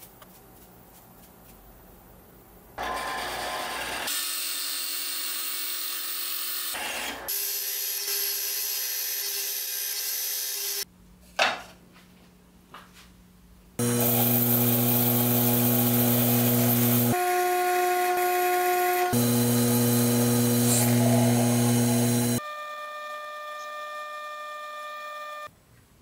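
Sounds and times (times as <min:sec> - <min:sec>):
lathe motor whine: 0:13.8 - 0:22.4.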